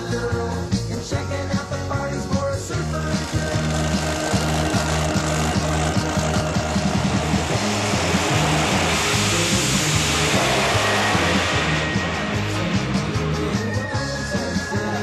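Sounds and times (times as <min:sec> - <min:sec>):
rock music: 0:00.0 - 0:15.0
drag car engine rush: 0:02.1 - 0:15.0.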